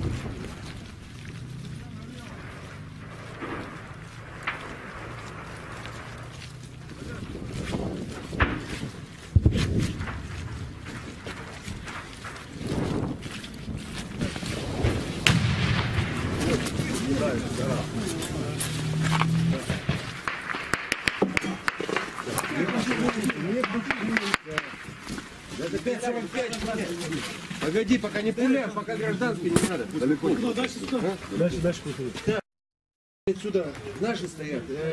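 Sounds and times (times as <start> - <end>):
indistinct voices: 15.9 - 20.2
sharp knocks: 19.7 - 24.8.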